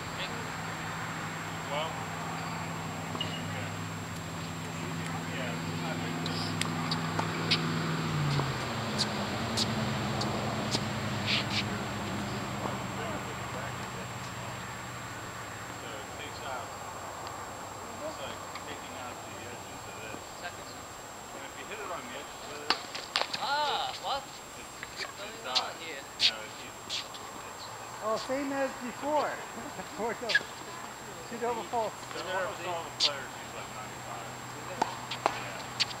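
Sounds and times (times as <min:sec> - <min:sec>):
low engine-like hum: 0:00.0 - 0:22.2
tennis ball bouncing on hard court: 0:06.6 - 0:11.6, 0:34.7 - 0:36.0
shoe scuff: 0:10.7 - 0:11.7
tennis ball pops: 0:34.8 - 0:36.0.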